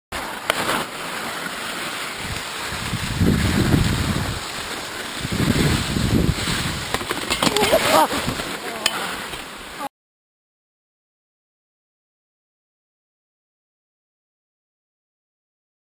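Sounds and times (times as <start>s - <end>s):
skis scraping over snow: 0.2s - 9.8s
wind buffeting microphone: 2.2s - 8.5s
person exclaiming: 7.5s - 9.2s.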